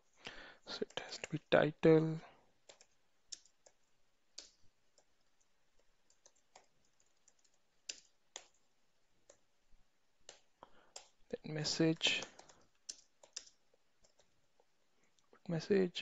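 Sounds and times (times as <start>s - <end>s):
slow keyboard typing: 2.6s - 9.5s, 10.2s - 11.4s, 12.0s - 14.7s.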